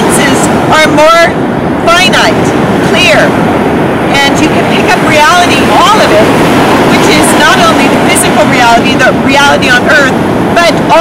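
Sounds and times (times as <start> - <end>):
woman speaking: 0.0 - 3.4, 4.1 - 6.3, 6.9 - 11.0
breaking surf: 0.0 - 11.0
wind on microphone: 0.0 - 11.0.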